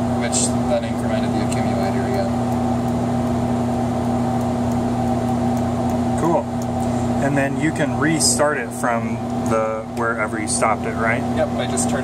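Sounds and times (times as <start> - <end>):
computer cooling fans humming: 0.0 - 12.0.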